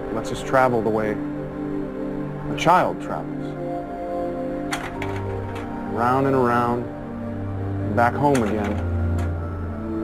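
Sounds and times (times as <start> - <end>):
background music held notes: 0.0 - 10.0.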